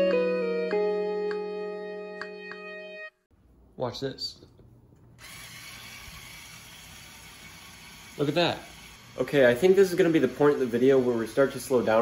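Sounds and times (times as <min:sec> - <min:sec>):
small electric motor whirring: 0:05.2 - 0:10.8.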